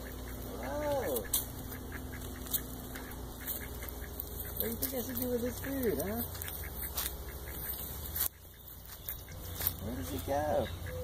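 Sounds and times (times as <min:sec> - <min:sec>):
rustling and scraping: 0:01.1 - 0:10.4.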